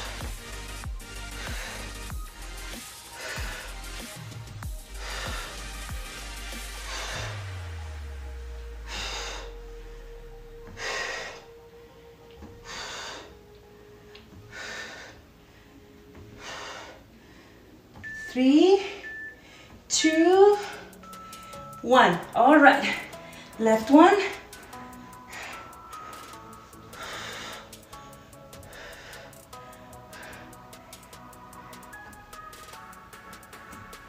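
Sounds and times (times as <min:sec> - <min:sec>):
quiet background music: 0:00.0 - 0:34.0
woman breathing out hard: 0:08.7 - 0:11.5.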